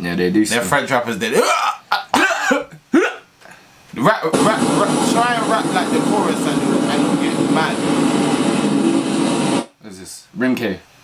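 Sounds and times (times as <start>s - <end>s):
man coughing: 1.3s - 3.3s.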